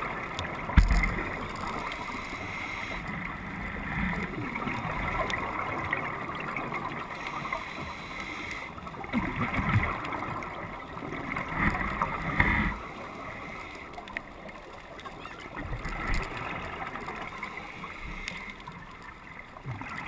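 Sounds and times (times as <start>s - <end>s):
scuba diver breathing underwater: 1.7s - 3.2s, 7.2s - 8.8s
gurgling exhaled bubbles: 8.9s - 12.9s.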